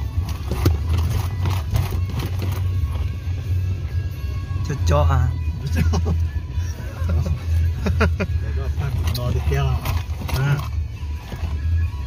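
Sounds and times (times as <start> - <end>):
vehicle rumble inside cabin: 0.0 - 12.0.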